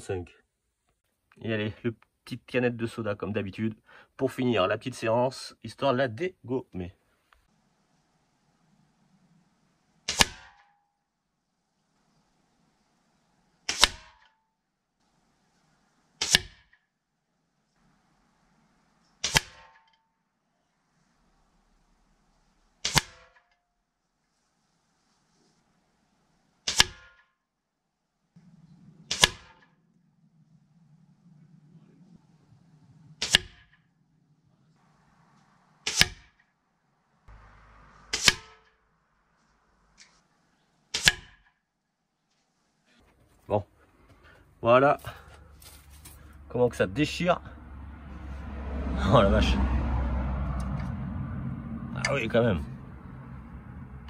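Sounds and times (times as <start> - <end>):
air rifle shots: 10.0 - 10.8, 13.6 - 14.3, 16.2 - 16.8, 19.2 - 19.9, 22.8 - 23.5, 26.6 - 27.2, 29.0 - 29.8, 33.2 - 33.8, 35.8 - 36.5, 38.1 - 38.7, 40.9 - 41.5.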